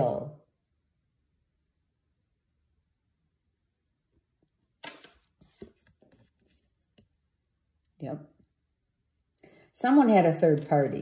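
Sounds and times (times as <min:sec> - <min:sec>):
hand sliding over cards: 0:05.0 - 0:07.1.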